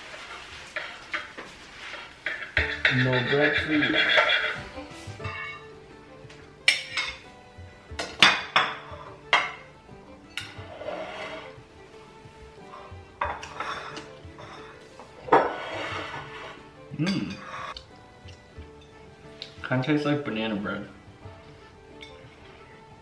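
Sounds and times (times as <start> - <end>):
soft background music: 0.0 - 23.0
knife and plates clinking: 0.2 - 5.7, 6.6 - 7.2, 12.8 - 17.8.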